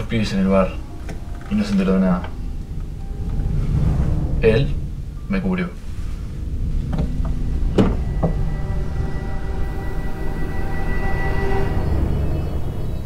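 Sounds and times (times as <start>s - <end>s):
low rumbling drone: 0.0s - 13.0s
sustained high tone: 0.7s - 13.0s.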